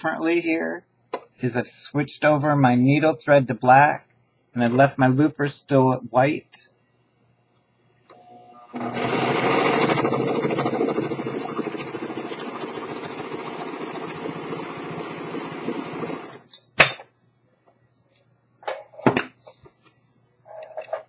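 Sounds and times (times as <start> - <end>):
serger sewing machine whirring: 8.1 - 16.4.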